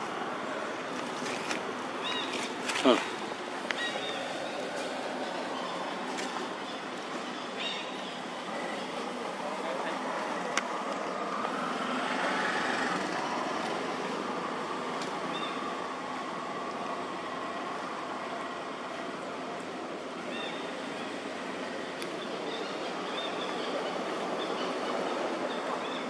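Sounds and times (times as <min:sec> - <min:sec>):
distant motor vehicle passing: 0:11.1 - 0:14.6.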